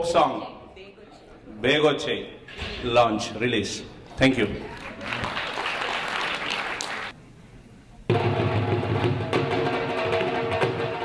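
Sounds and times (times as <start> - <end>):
applause: 4.7 - 7.2
dhol drum music: 8.1 - 11.0.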